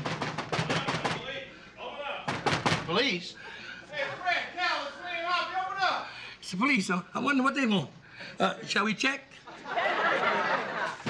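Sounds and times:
rapid loud knocking on door: 0.0s - 1.4s, 2.3s - 3.0s.

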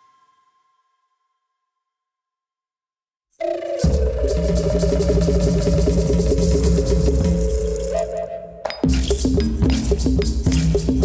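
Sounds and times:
background music with bass line: 3.8s - 11.0s
sharp percussive hits: 8.7s - 11.0s.

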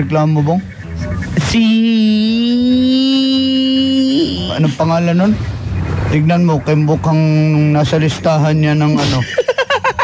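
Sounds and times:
person holding a long vowel: 1.8s - 4.8s.

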